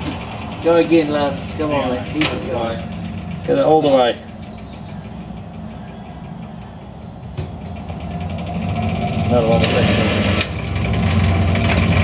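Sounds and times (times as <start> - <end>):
engine droning: 0.0 - 12.0.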